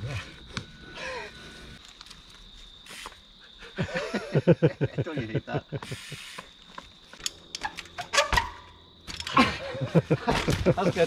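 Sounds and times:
faint steady high whine: 0:00.0 - 0:11.0.

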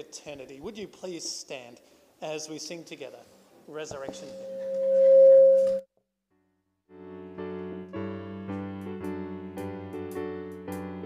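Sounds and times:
microphone feedback ringing: 0:04.0 - 0:05.8
digital piano chords: 0:07.0 - 0:11.0.

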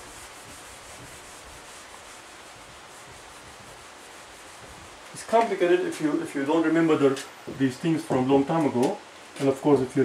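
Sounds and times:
eraser rubbing whiteboard: 0:00.0 - 0:05.1.

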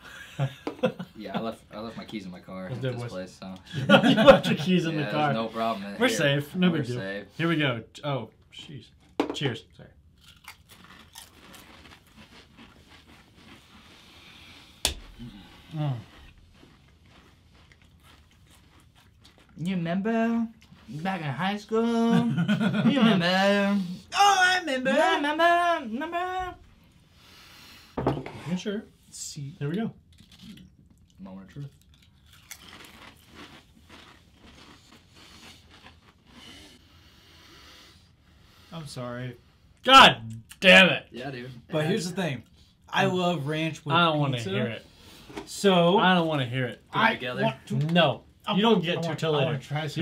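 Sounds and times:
people chewing crisps: 0:10.1 - 0:19.8, 0:30.0 - 0:37.0.

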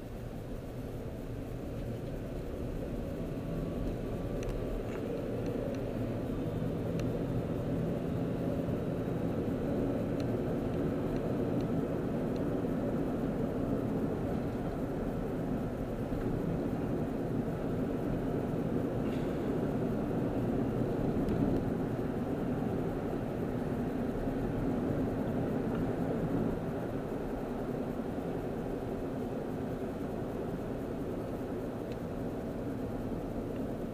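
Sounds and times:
car engine and road noise: 0:00.0 - 0:33.9.

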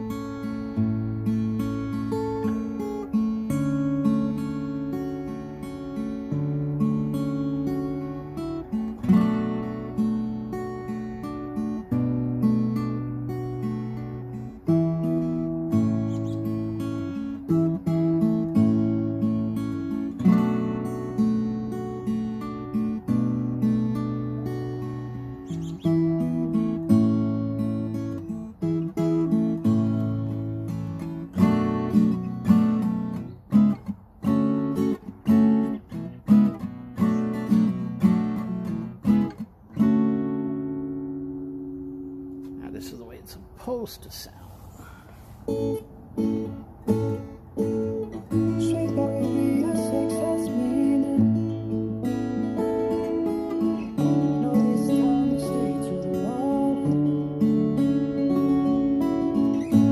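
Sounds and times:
acoustic guitar strumming chords: 0:00.0 - 0:43.9, 0:45.1 - 0:59.9.

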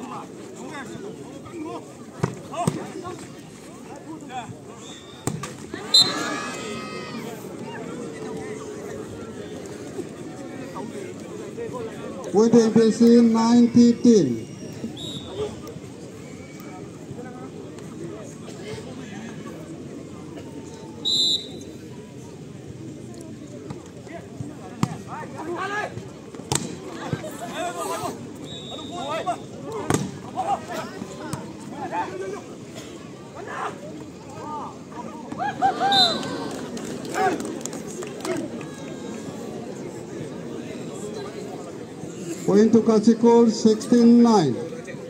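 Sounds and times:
spectators shouting and cheering: 0:05.2 - 0:09.7, 0:33.3 - 0:41.1
spectators shouting: 0:05.7 - 0:07.9, 0:35.2 - 0:37.5
referee's whistle blast: 0:05.9 - 0:06.2, 0:15.0 - 0:15.4, 0:21.0 - 0:21.7, 0:28.4 - 0:29.5
volleyball smack: 0:26.5 - 0:26.8, 0:29.8 - 0:30.2.

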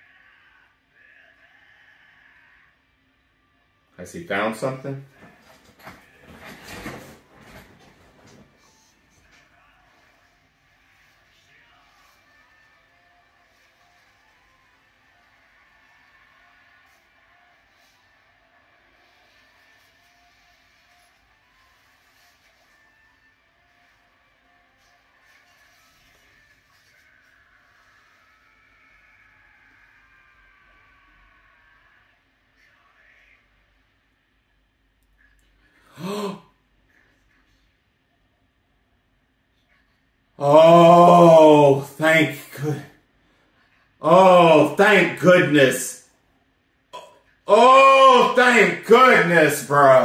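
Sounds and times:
shouted line of dialogue: 0:40.4 - 0:42.9, 0:44.0 - 0:46.0, 0:47.0 - 0:50.0.

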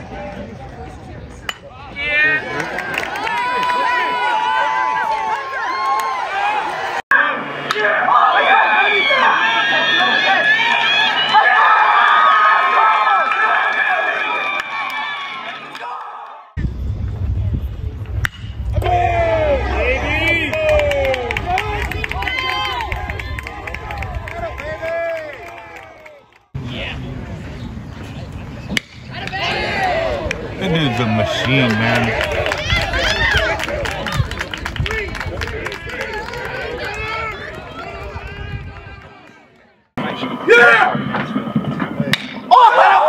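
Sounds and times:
people shouting: 0:01.9 - 0:16.5, 0:18.7 - 0:23.8, 0:40.4 - 0:41.0, 0:42.5 - 0:43.0
low steady rumble: 0:16.6 - 0:22.2
metal bat hitting ball: 0:18.2 - 0:18.9, 0:42.1 - 0:42.4.

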